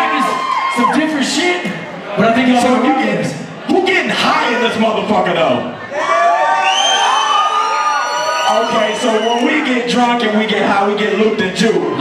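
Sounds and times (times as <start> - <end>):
concert crowd cheering: 0.0 - 4.9, 5.6 - 10.4, 11.3 - 12.0.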